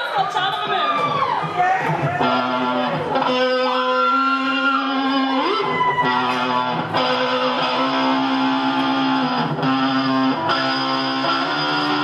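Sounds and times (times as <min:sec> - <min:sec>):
electric guitar sustained notes: 0:02.2 - 0:12.0.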